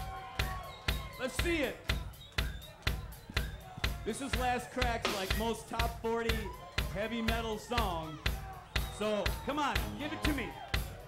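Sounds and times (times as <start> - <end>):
rock drum kit beat: 0.0 - 11.0.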